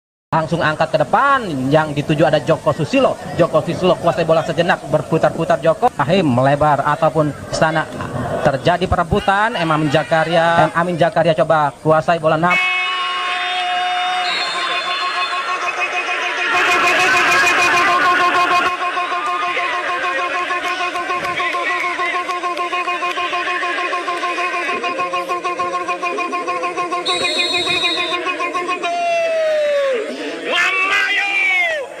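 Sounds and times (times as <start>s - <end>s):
commentator shouting: 12.3s - 32.0s
steady held tone: 23.4s - 29.0s.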